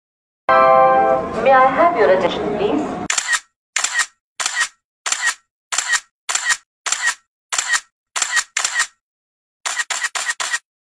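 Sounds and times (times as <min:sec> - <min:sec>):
camera shutter clicking: 0:03.1 - 0:09.0, 0:09.6 - 0:10.7.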